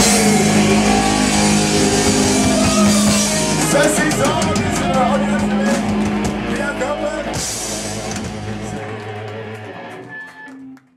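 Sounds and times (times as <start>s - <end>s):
man singing: 0.0s - 10.0s
electric guitar: 0.0s - 10.9s
live rock band playing: 0.0s - 10.9s.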